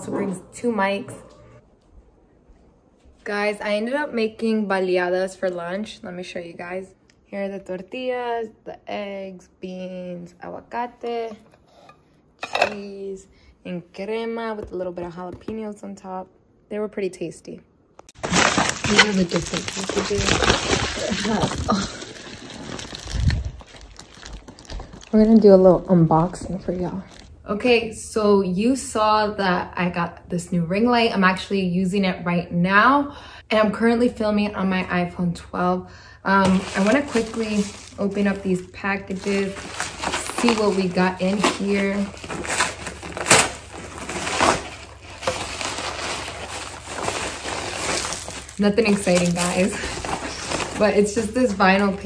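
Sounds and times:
padded mailer ripping: 18.2s - 24.8s, 39.1s - 51.3s
envelope rustling and crinkling: 18.2s - 25.6s, 36.4s - 52.0s.

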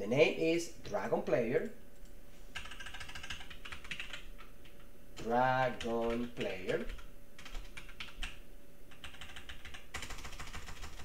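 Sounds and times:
computer keyboard typing: 2.0s - 11.0s.

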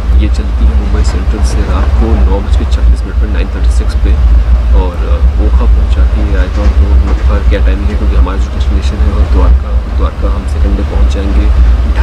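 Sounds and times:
man talking: 0.0s - 12.0s
train rumbling: 0.0s - 12.0s.

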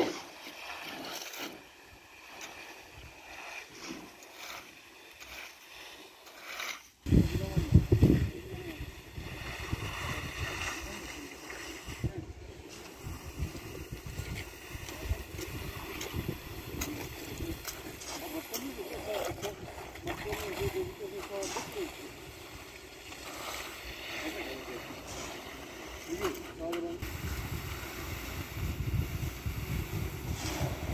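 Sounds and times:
float scraping wet concrete: 0.0s - 30.9s
wind on microphone: 7.0s - 18.2s, 27.0s - 30.9s.

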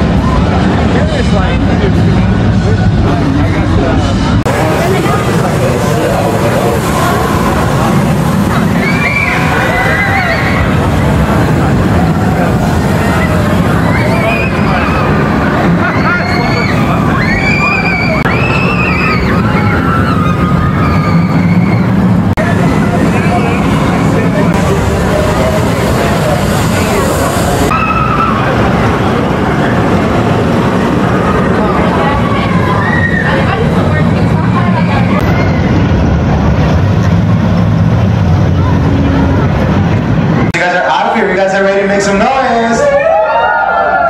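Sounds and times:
roller coaster rumbling on track: 0.0s - 44.0s
riders screaming and yelling: 4.5s - 36.8s, 42.7s - 44.0s.

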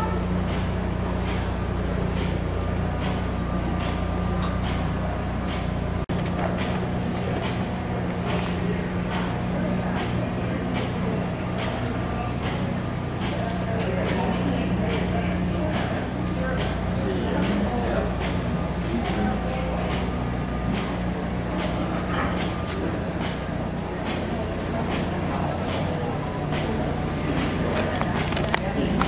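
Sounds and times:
indistinct voices: 0.0s - 29.0s
steady low hum: 0.0s - 29.0s.

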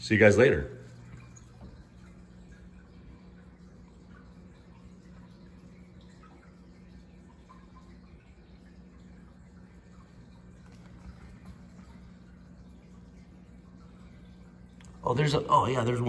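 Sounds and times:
aquarium pump hum: 0.0s - 16.0s
water trickling and dripping: 0.0s - 16.0s.

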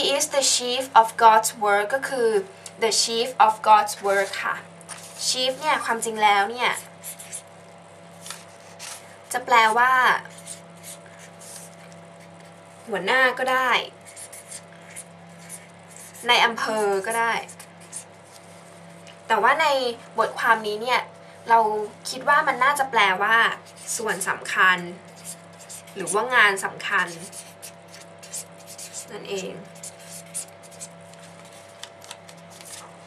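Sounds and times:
woman speaking: 0.0s - 6.9s, 9.3s - 10.4s, 12.9s - 14.0s, 16.2s - 17.6s, 19.3s - 25.1s, 25.9s - 27.5s, 29.0s - 29.8s
low electrical hum: 0.0s - 33.0s
pen writing: 10.3s - 11.8s, 14.0s - 16.3s, 25.1s - 26.2s, 27.0s - 30.9s.

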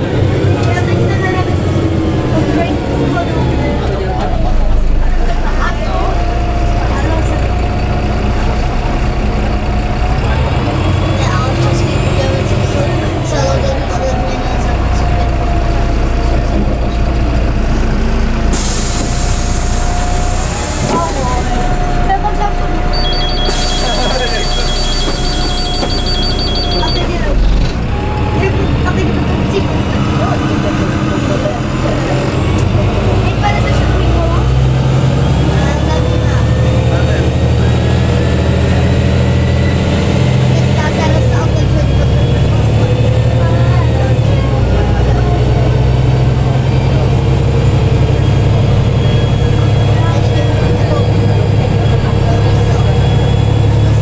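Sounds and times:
bus diesel engine pulling away: 0.0s - 54.0s
passenger chatter: 0.0s - 54.0s
electronic beeping: 22.9s - 27.3s.

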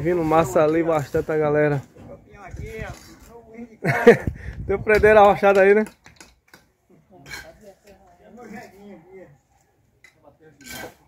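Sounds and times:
men talking at a distance: 6.9s - 11.0s.

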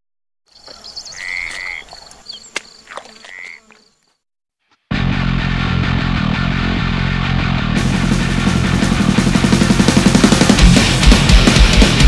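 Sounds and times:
frogs croaking: 0.5s - 4.2s
high insect buzz: 0.5s - 4.2s
heavy metal guitar music: 4.9s - 12.0s.

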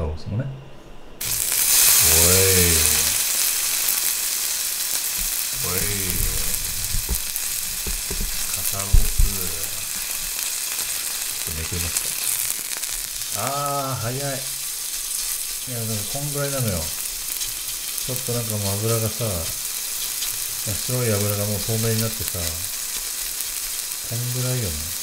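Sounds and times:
meat sizzling on a grill: 1.2s - 25.0s.

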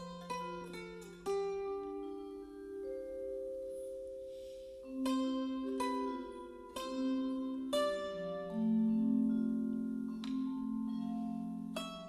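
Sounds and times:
plucked string instrument melody: 0.0s - 12.0s.

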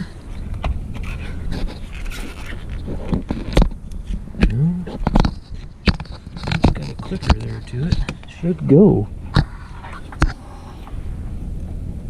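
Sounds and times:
steady low hum: 0.0s - 12.0s
plastic connectors scraping and rustling: 0.5s - 4.2s, 4.9s - 8.4s.

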